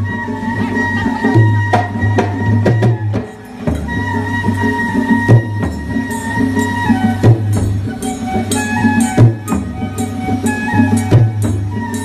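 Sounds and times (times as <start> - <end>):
drum strokes: 0.0 - 12.0.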